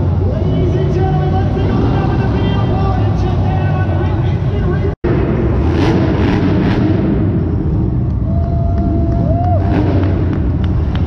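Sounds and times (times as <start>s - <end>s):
truck engines rumbling: 0.0s - 11.0s.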